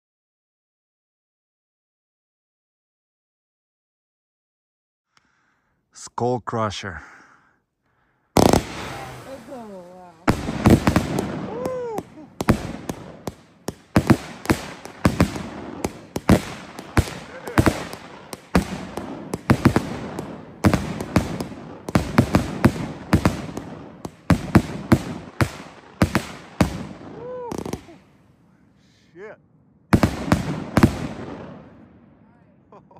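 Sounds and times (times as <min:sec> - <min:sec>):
firework bangs: 0:08.3 - 0:28.2, 0:29.9 - 0:32.3
firework rumble: 0:08.4 - 0:28.2.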